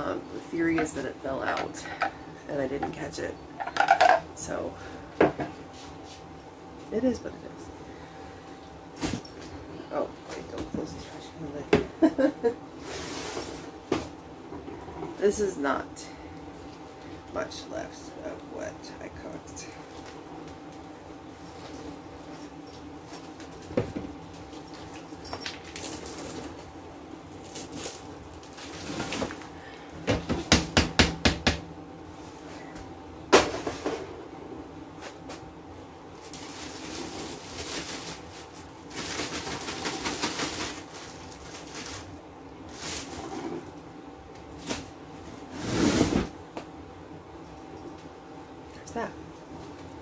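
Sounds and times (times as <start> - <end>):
dishes and cookware clattering: 3.6 - 4.3.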